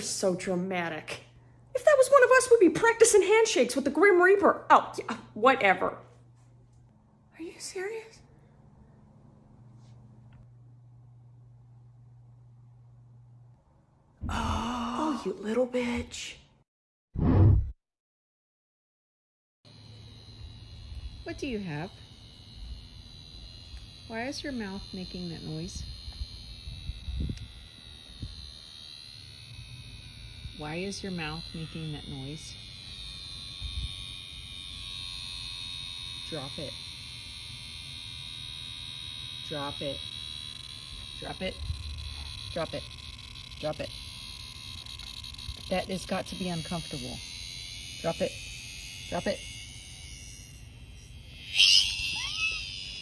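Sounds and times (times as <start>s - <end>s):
insect buzzing: 19.7s - 53.0s
short whine: 19.7s - 53.0s
faint high-pitched drone: 47.9s - 53.0s.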